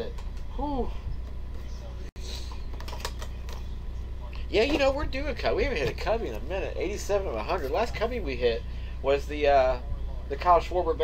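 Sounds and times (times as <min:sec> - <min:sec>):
steady low hum: 0:00.0 - 0:11.0
trading cards shuffled by hand: 0:02.4 - 0:03.7.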